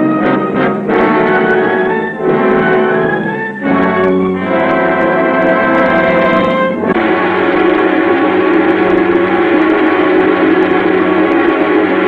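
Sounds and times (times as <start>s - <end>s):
orchestral sustained chord: 0.0s - 12.0s.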